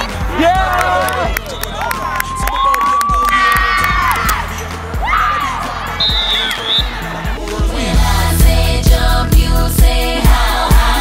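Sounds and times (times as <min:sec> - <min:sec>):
high-pitched cheering and shouting: 0:00.0 - 0:07.4
music with steady beat and bass: 0:00.0 - 0:11.0.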